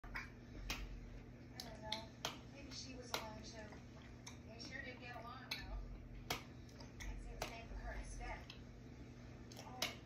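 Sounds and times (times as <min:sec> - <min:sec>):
steady low hum: 0:00.0 - 0:10.0
television dialogue: 0:00.0 - 0:10.0.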